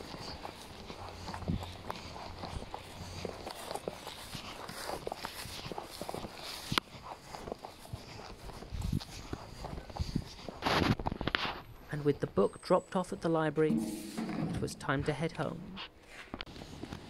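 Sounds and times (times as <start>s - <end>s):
footsteps on paved path: 0.0s - 12.4s, 13.7s - 17.0s.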